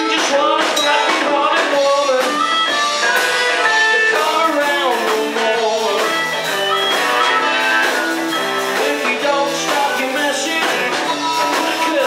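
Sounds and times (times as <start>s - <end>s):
blues-rock band playing: 0.0s - 12.0s
harmonica: 0.0s - 12.0s.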